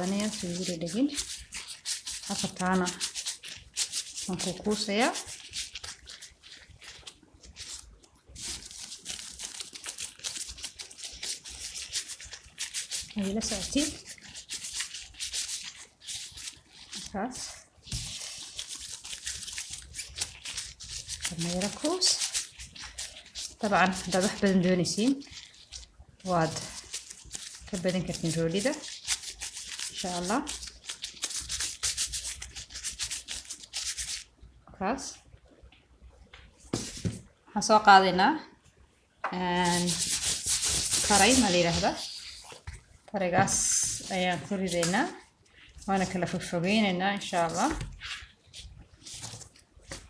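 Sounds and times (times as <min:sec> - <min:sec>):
gloved hands rubbing dough: 0:00.0 - 0:34.3, 0:36.7 - 0:37.2, 0:39.4 - 0:50.0.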